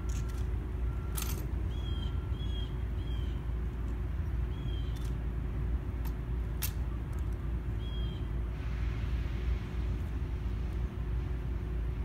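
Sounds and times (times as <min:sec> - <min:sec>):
low outdoor rumble: 0:00.0 - 0:12.0
bird chirp: 0:01.7 - 0:03.5, 0:04.2 - 0:05.2, 0:07.8 - 0:08.3.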